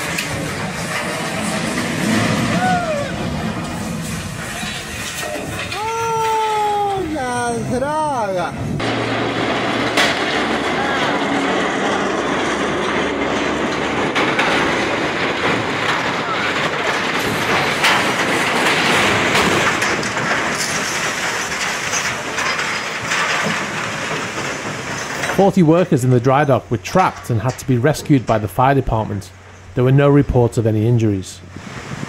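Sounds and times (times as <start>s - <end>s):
clattering rumble of metal: 0.0s - 32.0s
sharp metal knocks: 8.8s - 25.4s.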